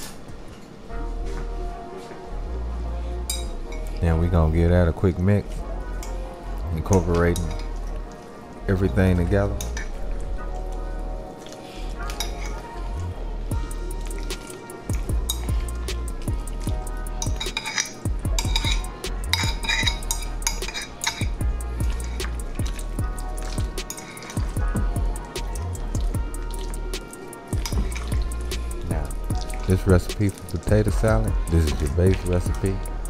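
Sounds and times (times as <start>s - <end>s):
background music with deep bass: 0.3s - 33.0s
fork clinking on glass bowl: 17.2s - 22.8s, 23.8s - 24.4s.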